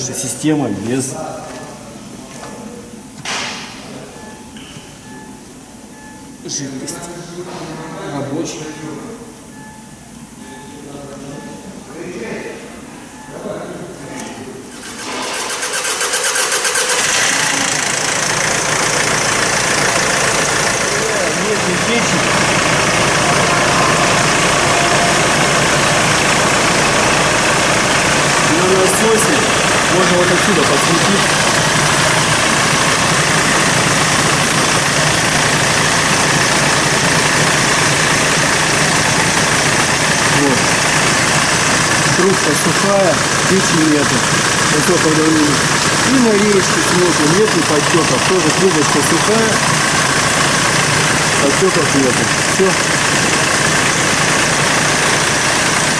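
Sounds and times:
diesel engine starting and idling: 14.7s - 55.9s.

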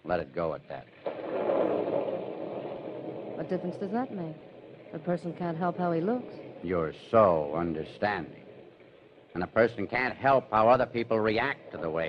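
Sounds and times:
storm rush of noise: 1.0s - 6.7s.

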